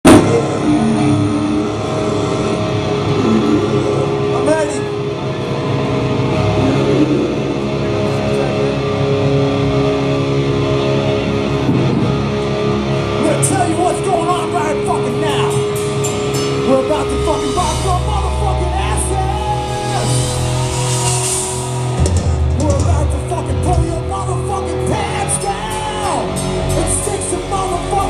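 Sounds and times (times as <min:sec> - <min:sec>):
crowd voices: 0:00.0 - 0:28.0
rock band with electric guitar: 0:00.0 - 0:28.0.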